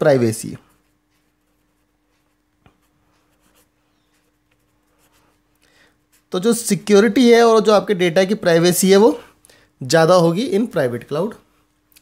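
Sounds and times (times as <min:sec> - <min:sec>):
low electrical hum: 0:00.0 - 0:12.0
marker pen writing on paper: 0:00.6 - 0:06.5.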